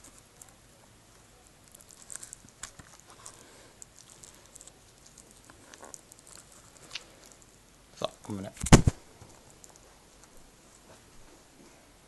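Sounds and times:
cellophane wrap crinkling: 1.4 - 7.5.

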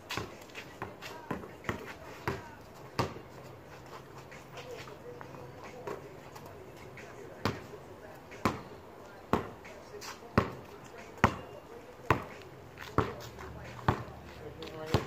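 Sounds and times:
basketball bouncing on concrete: 0.0 - 3.4, 7.3 - 7.7, 8.3 - 8.7, 9.3 - 9.8, 10.4 - 15.0.

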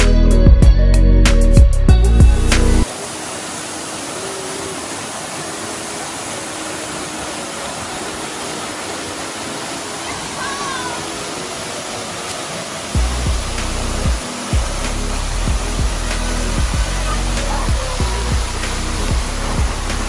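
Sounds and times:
waterfall pouring into pool: 2.8 - 20.0
low thumps: 13.0 - 20.0.

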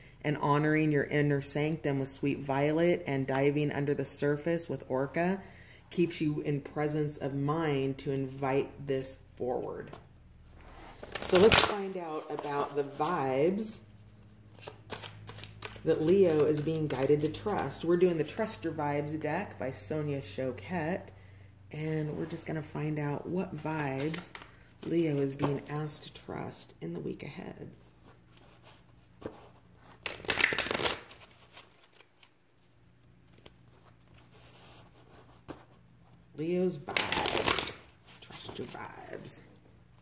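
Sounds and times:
cards being shuffled: 10.6 - 13.3, 14.5 - 17.7, 28.3 - 32.4, 36.9 - 39.3
person speaking: 11.2 - 13.9, 15.8 - 21.1, 36.3 - 39.5.

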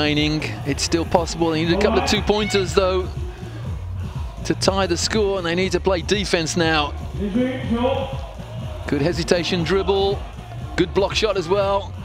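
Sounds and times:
man commentating: 0.0 - 3.1, 4.5 - 8.2
person speaking: 1.6 - 3.1.

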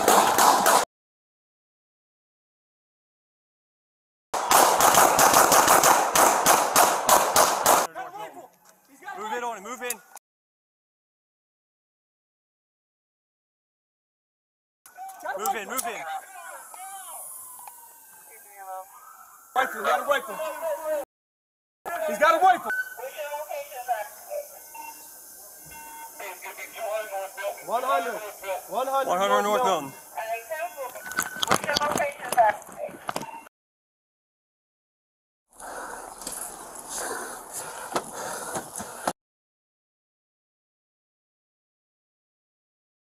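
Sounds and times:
distant police siren: 16.2 - 21.0.

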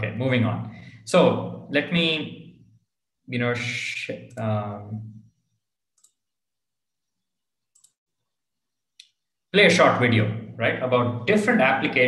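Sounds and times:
faint computer mouse clicks: 6.0 - 6.2, 7.8 - 8.0.

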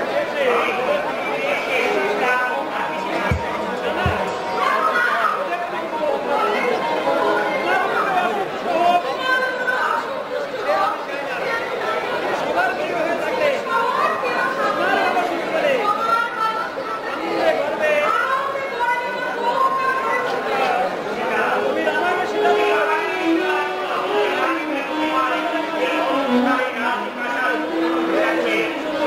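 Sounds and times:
actors speaking dialogue: 0.0 - 29.0.

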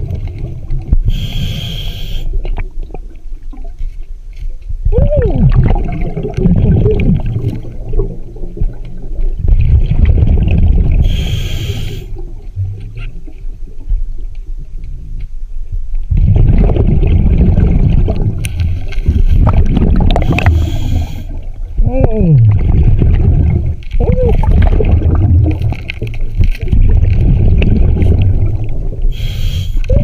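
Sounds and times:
rumbling bubble bursts: 4.8 - 11.2, 16.1 - 21.0, 21.7 - 29.2.

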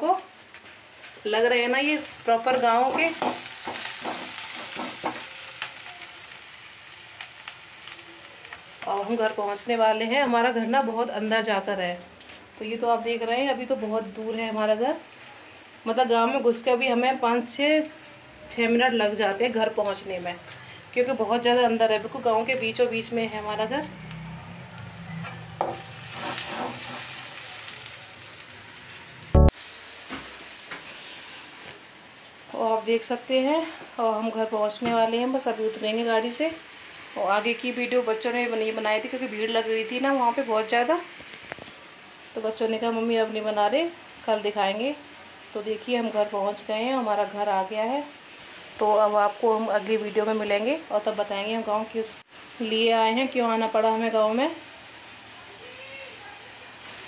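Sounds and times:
rain hissing: 0.3 - 11.7, 12.3 - 34.4, 36.4 - 51.4, 52.1 - 57.0.

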